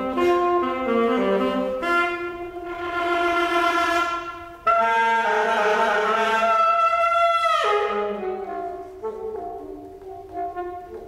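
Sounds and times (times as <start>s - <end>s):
solo saxophone playing: 0.0s - 11.0s.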